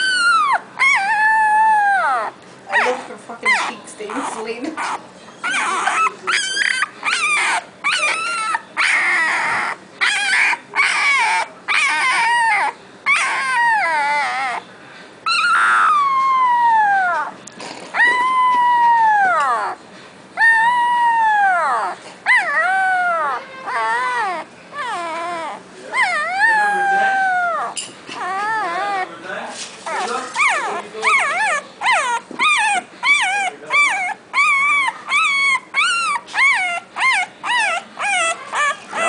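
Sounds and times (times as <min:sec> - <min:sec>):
puppy howling: 0:00.0 - 0:14.6, 0:15.3 - 0:19.8, 0:20.4 - 0:39.0
puppy whimpering: 0:00.0 - 0:14.7, 0:15.3 - 0:19.8, 0:20.4 - 0:39.0.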